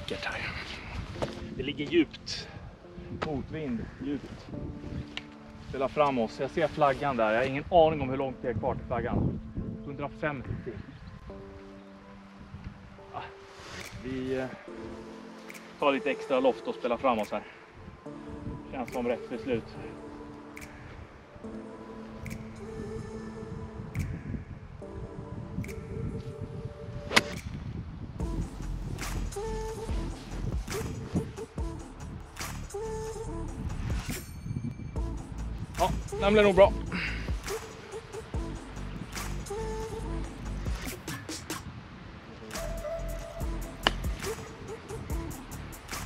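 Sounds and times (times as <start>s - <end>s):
background music with sustained tones: 0.0s - 41.3s, 42.2s - 46.0s
golf club striking ball: 27.1s - 27.6s.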